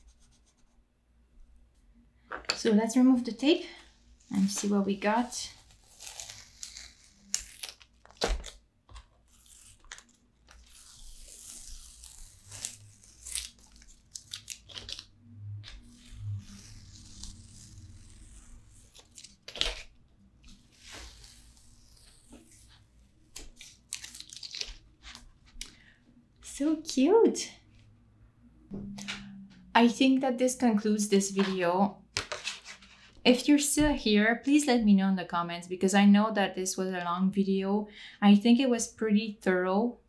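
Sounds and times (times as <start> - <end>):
tape peeling off paper: 5.5 - 25.3.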